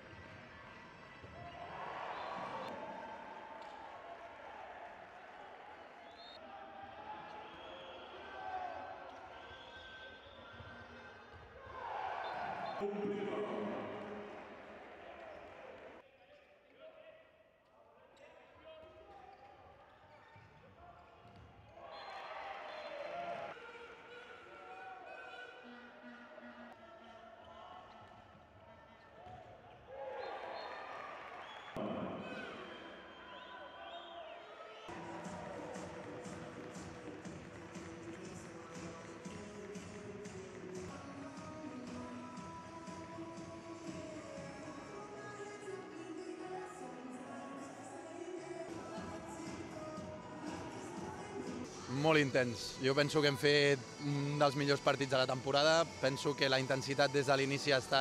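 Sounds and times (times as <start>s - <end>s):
voices and shouts: 1.3s - 16.0s
handball bouncing on court: 20.4s - 21.7s.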